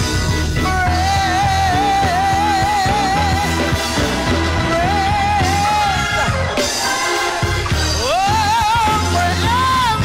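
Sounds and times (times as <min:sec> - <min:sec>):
steady bass: 0:00.0 - 0:10.0
gospel choir singing: 0:00.6 - 0:10.0.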